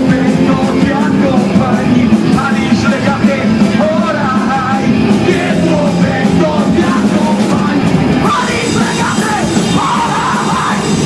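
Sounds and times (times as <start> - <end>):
punk band playing live: 0.0 - 11.0
shouted vocals: 8.2 - 11.0.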